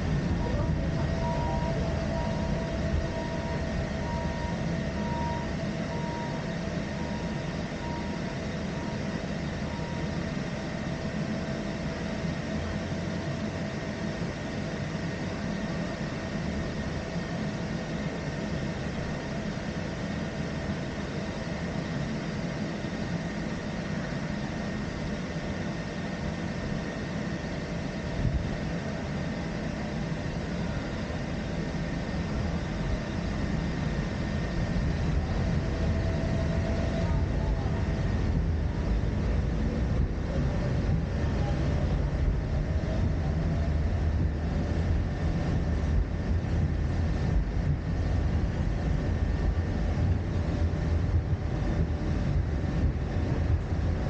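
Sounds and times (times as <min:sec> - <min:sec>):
funicular car rumbling: 0:00.0 - 0:08.2, 0:34.3 - 0:54.0
faint pulsing high tone: 0:00.0 - 0:11.5, 0:30.2 - 0:46.2.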